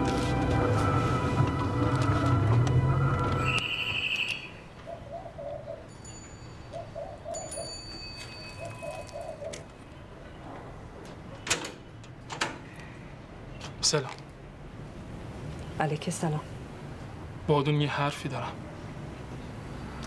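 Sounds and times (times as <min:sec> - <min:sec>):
tense background music: 0:00.0 - 0:04.2
pigeon cooing: 0:04.3 - 0:05.9, 0:06.6 - 0:07.8, 0:08.5 - 0:09.8.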